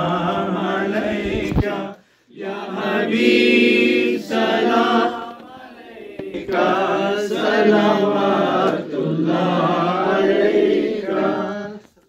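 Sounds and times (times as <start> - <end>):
men chanting together: 0.0 - 11.8.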